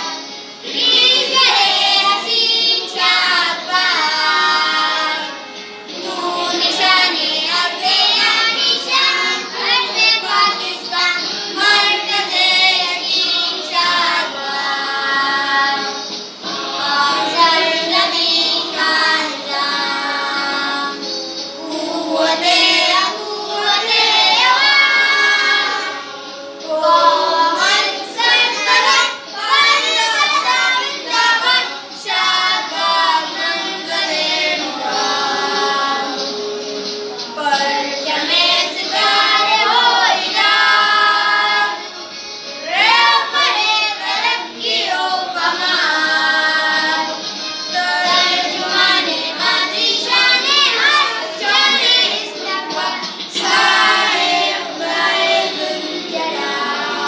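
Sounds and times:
children singing together: 0.0 - 57.0.

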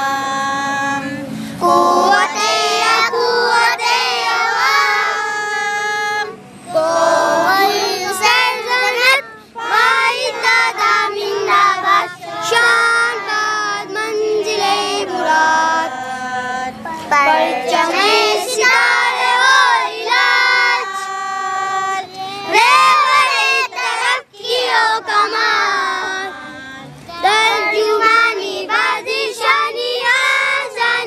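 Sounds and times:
children and women singing in chorus: 0.0 - 31.0.

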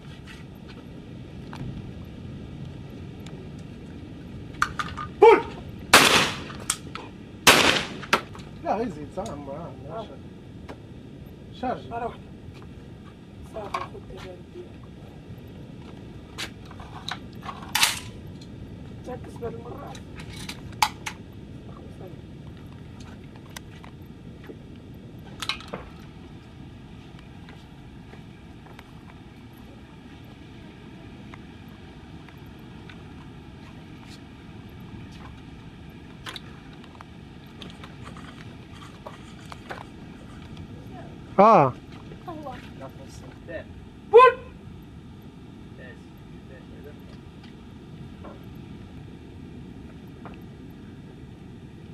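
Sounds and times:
low background rumble: 0.0 - 51.9
shotgun shots: 5.9 - 6.7, 7.5 - 8.3.

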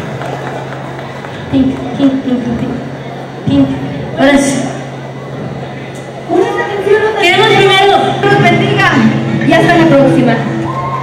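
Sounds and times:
crowd noise in a hall: 0.0 - 11.0
woman speaking over microphone: 6.3 - 10.5.

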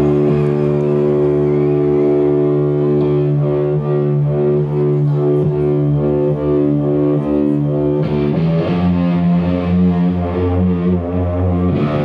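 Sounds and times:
electric guitar low note: 0.0 - 12.0.

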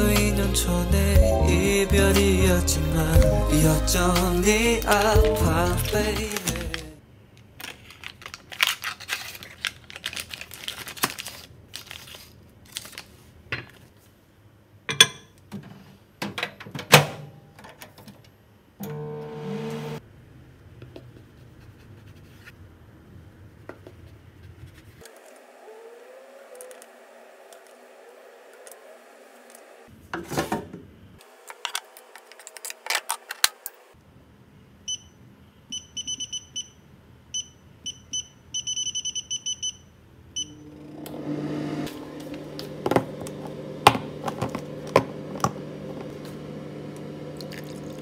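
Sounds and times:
microwave oven humming: 18.8 - 20.0, 40.4 - 48.0.

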